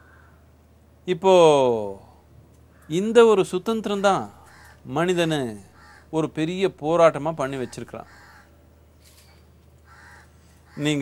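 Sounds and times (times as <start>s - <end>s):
crow cawing: 0.0s - 0.4s, 2.7s - 3.0s, 4.0s - 4.9s, 5.6s - 6.2s, 7.6s - 8.6s, 9.8s - 11.0s.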